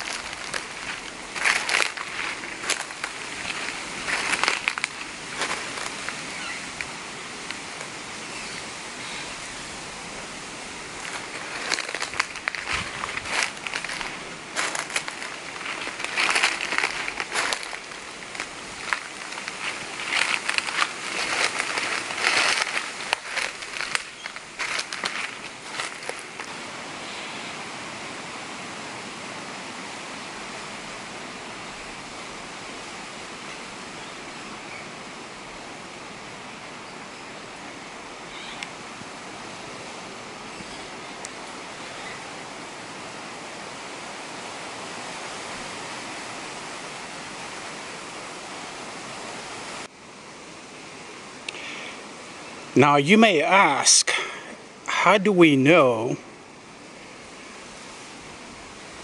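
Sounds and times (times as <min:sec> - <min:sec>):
footsteps on dry leaves and rock: 0:00.0 - 0:08.6, 0:10.3 - 0:26.6
rushing outdoor background noise: 0:00.0 - 0:59.0.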